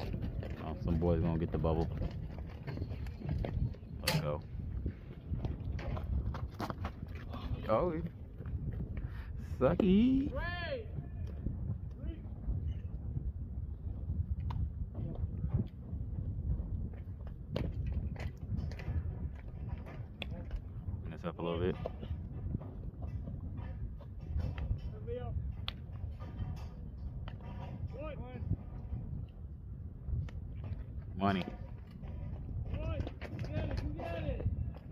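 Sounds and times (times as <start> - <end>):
wind rumbling on microphone: 0.0 - 34.9.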